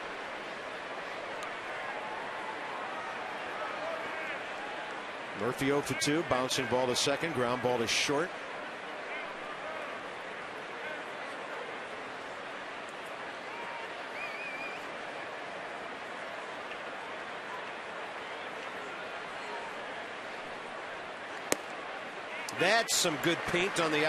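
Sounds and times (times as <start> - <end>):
murmur of crowd: 0.0 - 24.0
ball hitting catcher's mitt: 21.5 - 21.8
fans calling out: 22.5 - 24.0.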